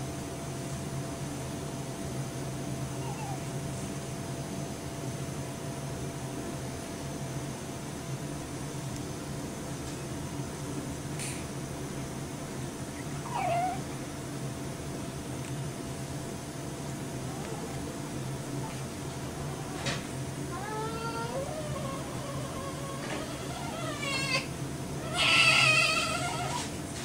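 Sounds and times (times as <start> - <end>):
low room hum: 0.0 - 27.0
baby whimpering cry: 3.0 - 3.5, 13.2 - 13.8, 17.2 - 17.9, 20.5 - 26.7.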